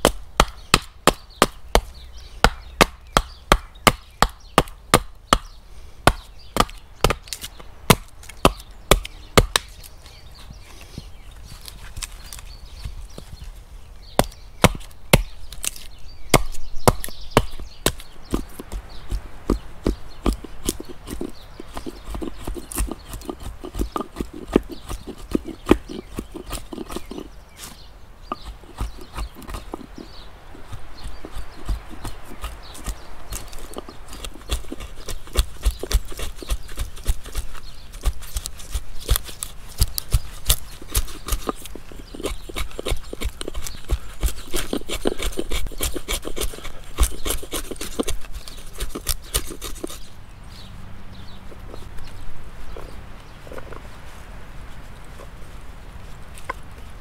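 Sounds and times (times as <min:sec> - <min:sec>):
blade scraping wood: 0:20.2 - 0:50.2.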